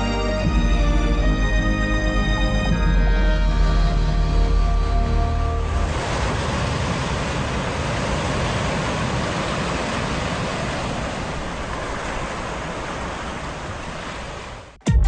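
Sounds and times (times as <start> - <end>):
held music notes over deep bass: 0.0 - 5.9.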